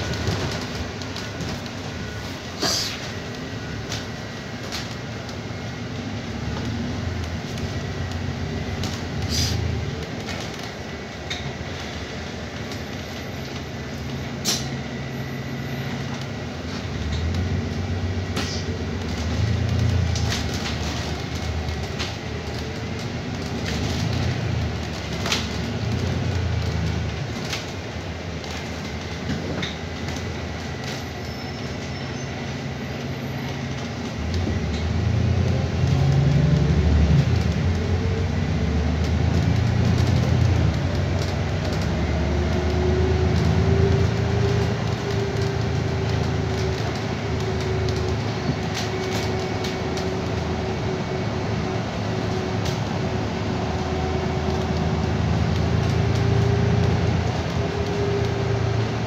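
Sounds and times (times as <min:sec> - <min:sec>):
bus drivetrain and road hum: 0:00.0 - 0:59.0.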